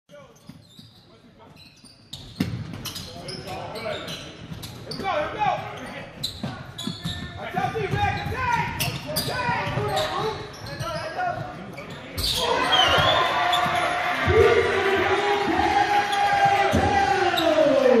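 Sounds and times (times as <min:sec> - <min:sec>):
sneaker squeaks: 0:00.1 - 0:14.1
voices in gym: 0:00.1 - 0:18.0
spectators shouting: 0:12.4 - 0:18.0.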